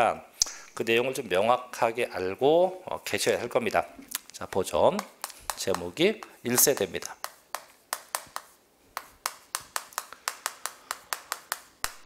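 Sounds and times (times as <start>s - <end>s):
chalk tapping on chalkboard: 4.5s - 12.0s.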